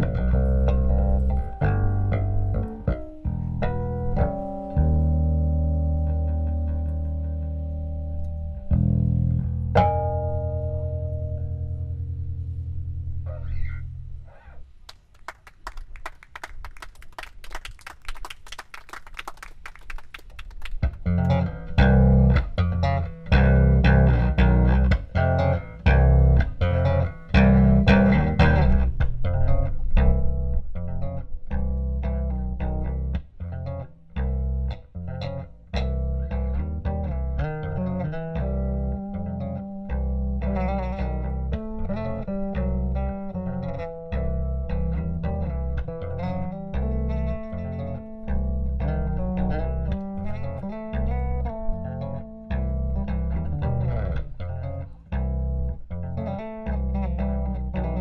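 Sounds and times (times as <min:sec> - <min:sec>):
electric bass guitar: 0:00.0 - 0:14.8, 0:20.5 - 0:58.0.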